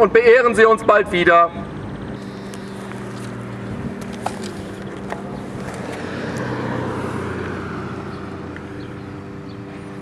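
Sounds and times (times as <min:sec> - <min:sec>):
low engine hum: 0:00.0 - 0:10.0
vehicle passing by: 0:01.5 - 0:10.0.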